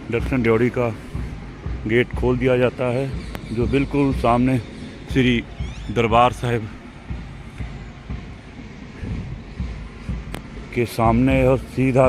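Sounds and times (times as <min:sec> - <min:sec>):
irregular low rumble: 0:00.0 - 0:12.0.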